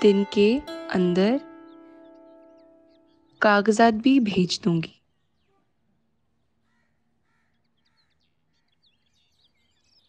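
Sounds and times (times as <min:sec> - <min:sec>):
high bird chirps: 0:00.0 - 0:03.9
faint birds calling: 0:00.0 - 0:10.0.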